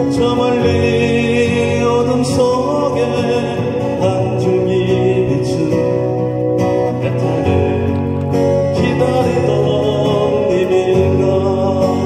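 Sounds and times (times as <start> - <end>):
acoustic guitars playing: 0.0 - 12.0.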